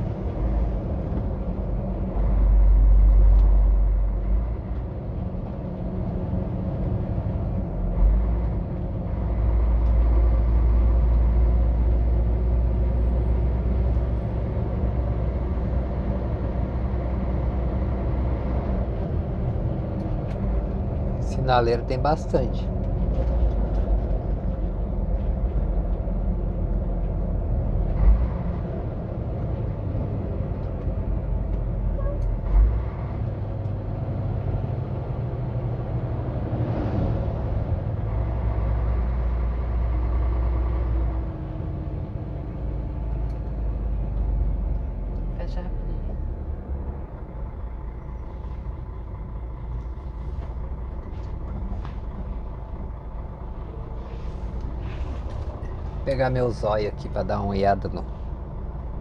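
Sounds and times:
truck engine and road noise: 0.0 - 59.0.

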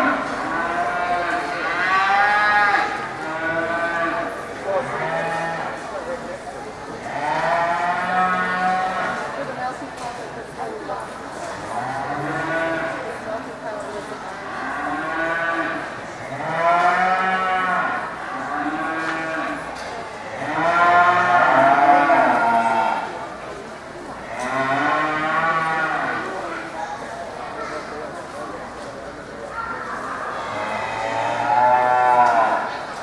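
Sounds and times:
cattle mooing: 20.4 - 23.2, 30.4 - 32.8.

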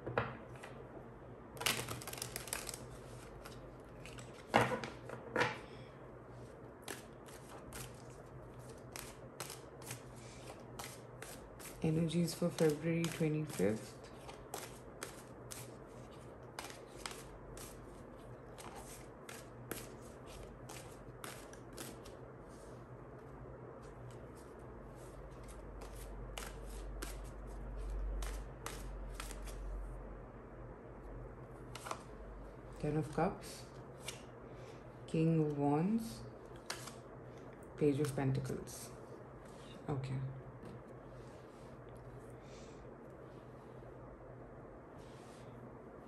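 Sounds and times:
faint low hum: 0.0 - 46.0
cards being shuffled: 1.6 - 5.0, 6.8 - 22.2, 25.3 - 29.6, 31.7 - 32.1, 34.0 - 34.3, 36.5 - 37.0.

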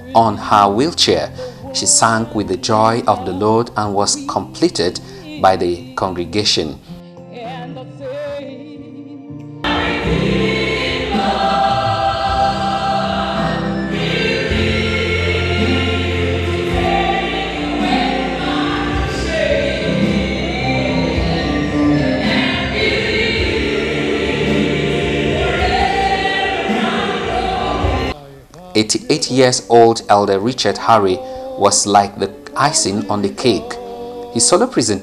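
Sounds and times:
choir singing: 0.0 - 6.7, 9.6 - 35.0
woman singing into a microphone: 7.3 - 10.6
instrumental backing with bass: 9.4 - 28.2.

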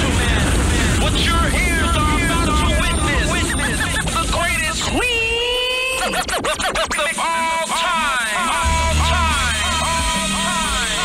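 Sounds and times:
turntable scratching: 0.0 - 11.0.

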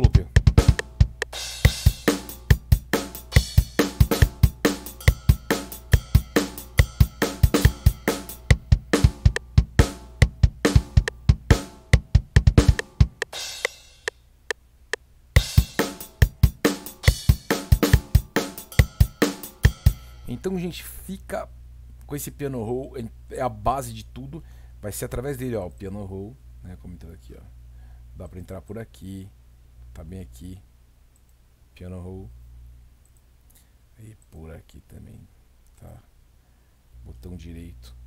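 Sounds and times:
programmed drum beat loop: 0.0 - 20.5.

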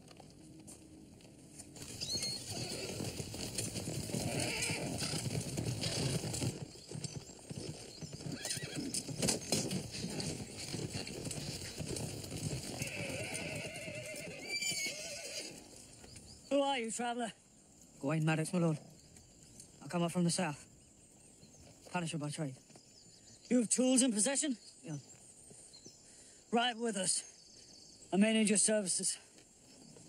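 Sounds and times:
hooves clattering on dirt: 0.0 - 30.0
horses neighing: 1.8 - 16.0.

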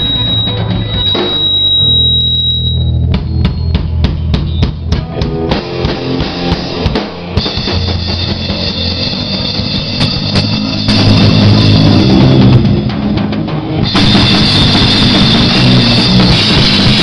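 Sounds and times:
high steady tone: 0.0 - 4.7
full band playing: 0.0 - 17.0
rock drum kit: 0.0 - 17.0.

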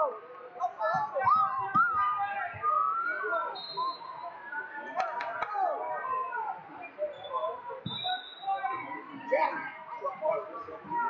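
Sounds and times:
crowd voices in a hall: 0.0 - 11.0.

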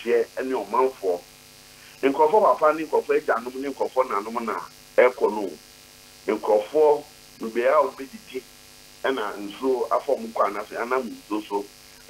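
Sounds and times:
man talking over telephone: 0.0 - 1.2, 2.0 - 5.6, 6.3 - 8.4, 9.0 - 11.7.

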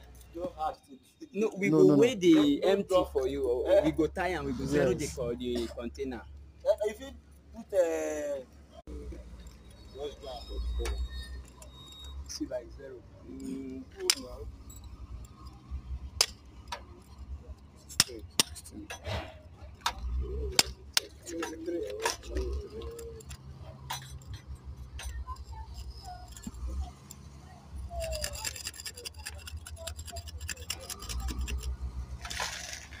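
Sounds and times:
metal tools clinking: 13.3 - 19.1, 19.8 - 33.0.

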